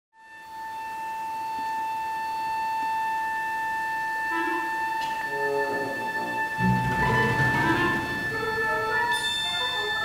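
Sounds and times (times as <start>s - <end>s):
orchestra holding high note: 5.6s - 10.0s.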